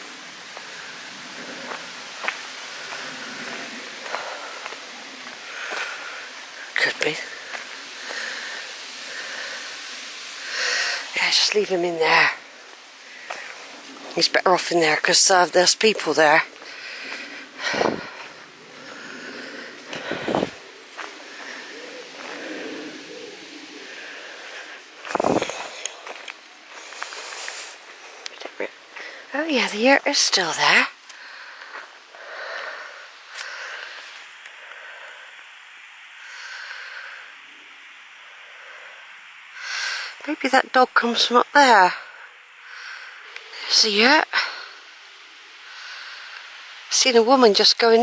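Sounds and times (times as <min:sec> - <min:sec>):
outdoor background hiss: 0:00.0 - 0:48.0
birds singing: 0:00.5 - 0:11.9
footsteps on dirt: 0:01.6 - 0:08.4, 0:12.7 - 0:14.4, 0:15.3 - 0:29.6.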